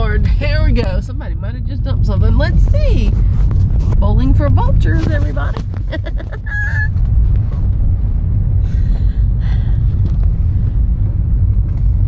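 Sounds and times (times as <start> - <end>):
car cabin rumble on dirt road: 0.0 - 12.0.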